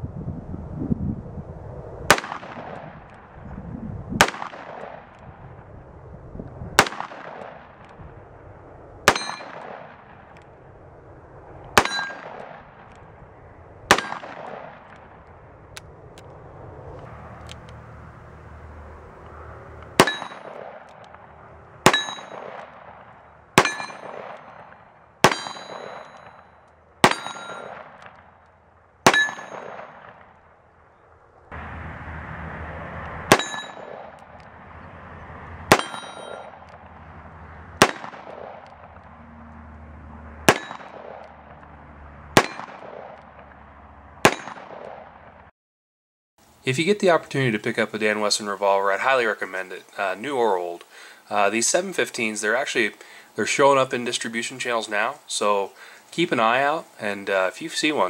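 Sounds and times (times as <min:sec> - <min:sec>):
revolver shots with metallic ring: 0:09.1 - 0:10.2, 0:11.8 - 0:12.9, 0:13.9 - 0:14.9, 0:20.0 - 0:21.1, 0:21.8 - 0:28.2, 0:29.0 - 0:30.3, 0:33.3 - 0:34.2, 0:35.7 - 0:36.7, 0:40.5 - 0:41.3, 0:42.4 - 0:43.2, 0:44.2 - 0:45.1.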